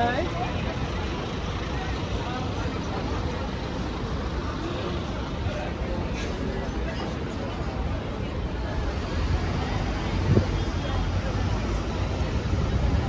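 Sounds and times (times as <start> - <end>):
woman's voice: 0.0 - 0.7
pedestrians chattering: 0.0 - 13.0
traffic and bus engines rumbling: 0.0 - 13.0.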